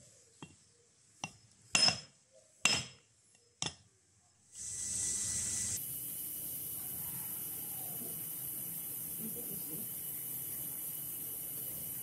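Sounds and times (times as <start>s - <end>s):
steady hiss: 4.5s - 12.0s
faint high whine: 4.6s - 12.0s.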